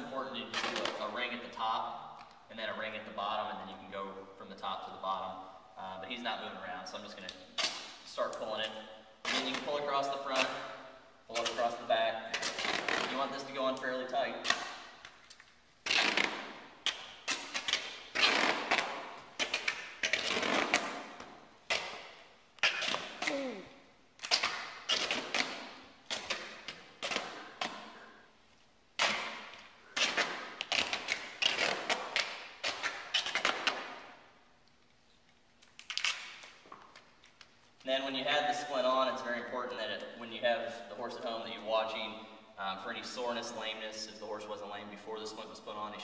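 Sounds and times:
duct tape pulled off roll: 0.5 - 1.2, 7.2 - 10.6, 11.3 - 23.4, 24.2 - 28.2, 29.0 - 34.3, 35.2 - 37.8.

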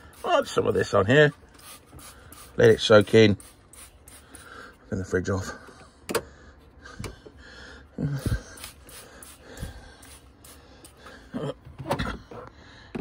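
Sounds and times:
spray bottle clicking and hissing: 1.5 - 2.6, 3.4 - 4.4, 8.6 - 9.4.

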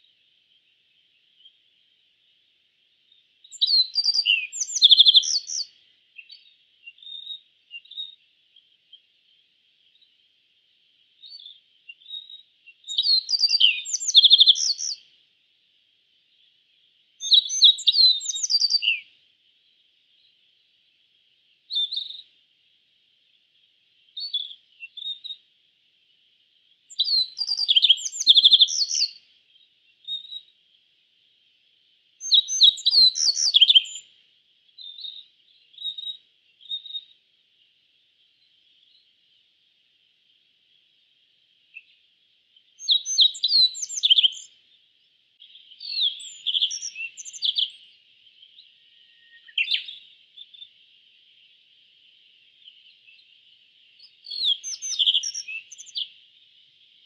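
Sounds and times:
faint steady hiss: 0.0 - 57.0
bird singing high clear notes: 45.5 - 47.8, 54.3 - 56.1.

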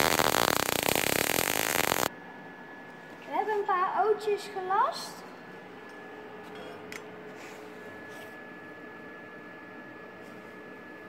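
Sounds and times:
faint high whine: 0.0 - 2.7
steady hum: 0.0 - 11.0.

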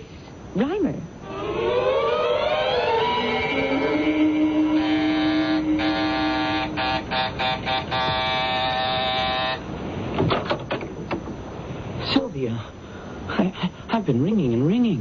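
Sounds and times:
rising music sting: 1.2 - 7.5
electric door buzzer: 2.4 - 9.7.

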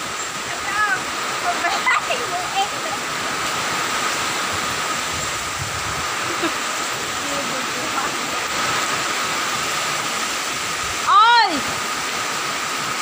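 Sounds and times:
heavy rain: 0.0 - 13.0
strong wind: 0.0 - 13.0.

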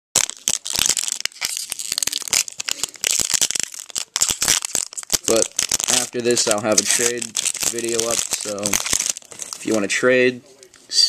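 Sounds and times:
foil wrapper crackling: 0.2 - 10.7.

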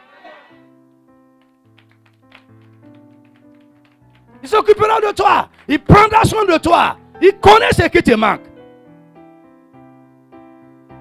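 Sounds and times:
keyboard chords: 0.6 - 11.0.

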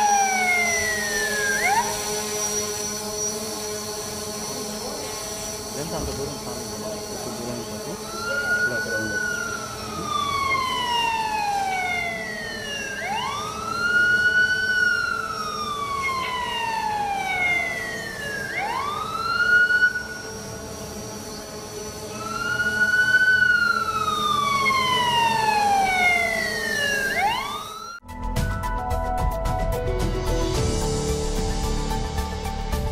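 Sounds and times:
wailing siren: 0.0 - 5.1, 5.8 - 28.0.

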